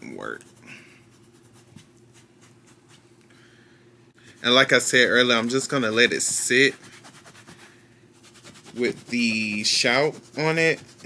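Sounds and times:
low steady hum: 0.0 - 11.0
wet rag scrubbing fabric: 4.4 - 11.0.

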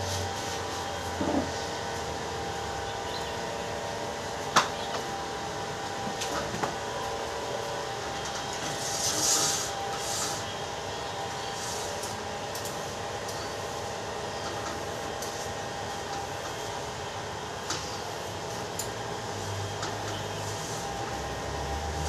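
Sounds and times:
mechanical hum of equipment: 0.0 - 22.0.

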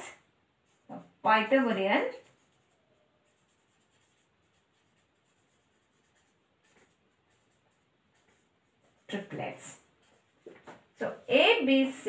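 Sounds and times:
marker pen scratching on whiteboard: 0.6 - 11.8.

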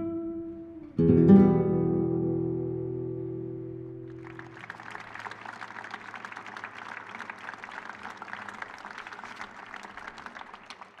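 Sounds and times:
audience applauding: 4.1 - 11.0.

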